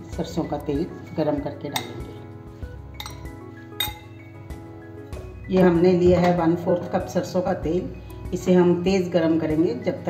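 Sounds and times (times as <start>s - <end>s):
soft background music: 0.0s - 10.0s
spoon clinking against glass bowl: 2.9s - 4.3s.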